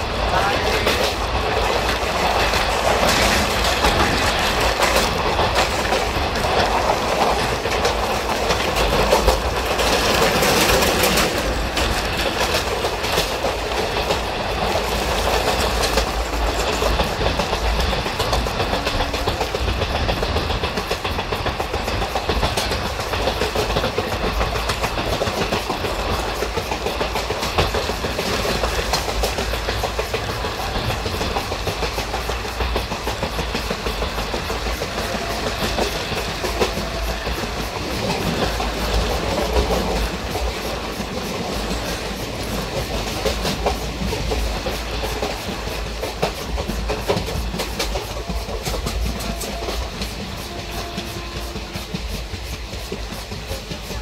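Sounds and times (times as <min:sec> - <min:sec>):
clickety-clack clatter: 0:00.0 - 0:54.0
train wheels rumbling on rails: 0:00.0 - 0:54.0.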